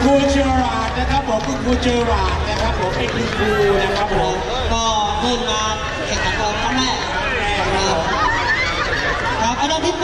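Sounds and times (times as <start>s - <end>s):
man announcing over loudspeaker: 0.0s - 8.3s, 9.4s - 10.0s
crowd chatter: 0.0s - 10.0s.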